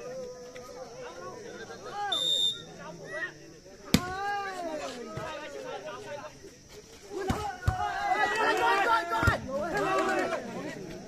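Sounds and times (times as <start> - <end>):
players and spectators calling out: 0.0 - 11.0
referee's whistle blast: 2.0 - 2.7.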